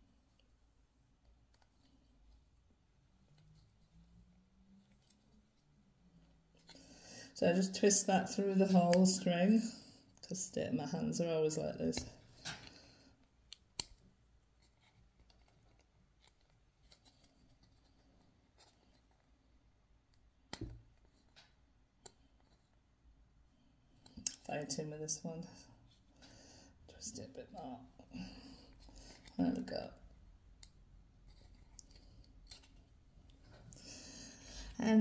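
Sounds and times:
faint clicks of handled objects: 20.1s - 22.8s.

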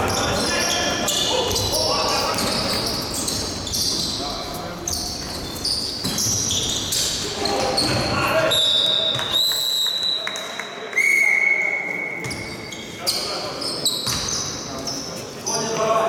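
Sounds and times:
sneakers squeaking: 0.0s - 9.5s, 12.0s - 16.0s
referee's whistle: 8.5s - 12.8s.

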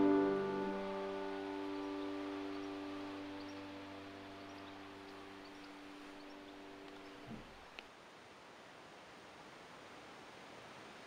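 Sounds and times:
sustained piano chord: 0.0s - 6.9s.

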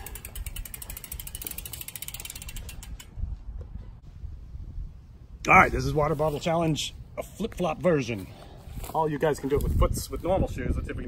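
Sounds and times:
bicycle freewheel ticking: 0.0s - 3.2s.

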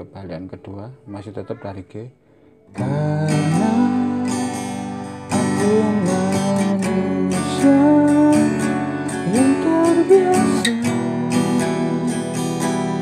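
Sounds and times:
acoustic guitar strummed: 2.7s - 13.0s
man singing: 2.7s - 13.0s.

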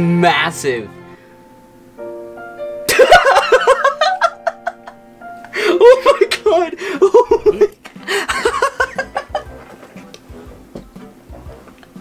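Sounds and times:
music: 0.0s - 12.0s
young man laughing: 2.9s - 10.0s.

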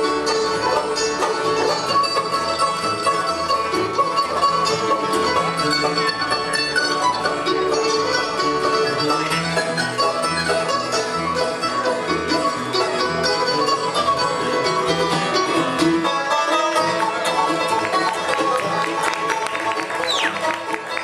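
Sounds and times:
banjo rolling: 0.0s - 21.0s
mandolin: 0.0s - 21.0s
strummed acoustic guitars: 0.0s - 21.0s.

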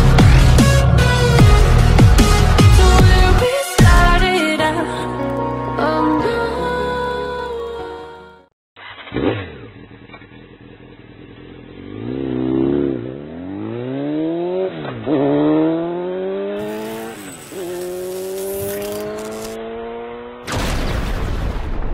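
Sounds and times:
engine accelerating through gears: 8.8s - 20.5s.

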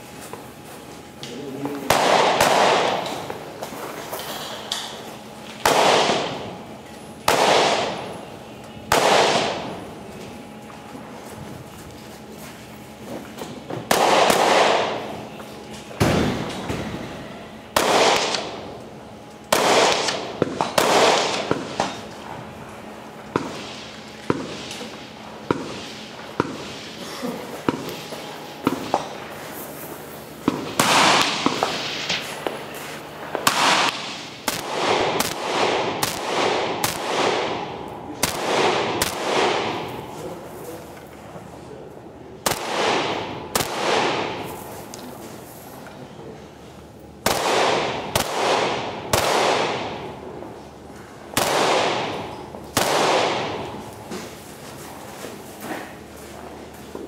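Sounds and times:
rifle shots with long echo: 1.9s - 3.4s, 5.6s - 6.6s, 7.2s - 8.2s, 8.9s - 9.8s, 13.9s - 15.2s, 16.0s - 18.8s, 19.5s - 22.0s, 23.3s - 27.0s, 30.4s - 32.6s, 33.2s - 40.1s, 42.4s - 44.7s, 47.2s - 50.5s, 51.3s - 53.9s.

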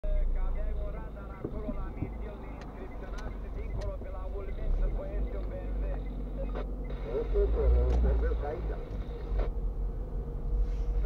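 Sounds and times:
car cabin rumble: 0.1s - 11.0s.

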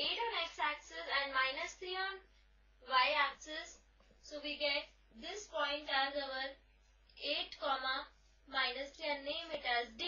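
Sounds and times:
woman talking: 0.0s - 6.6s, 7.2s - 10.0s.

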